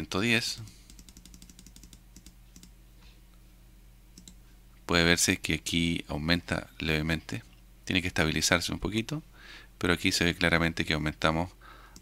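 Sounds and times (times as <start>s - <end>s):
faint low hum: 0.0s - 12.0s
computer mouse clicking: 0.9s - 2.7s, 4.2s - 4.4s.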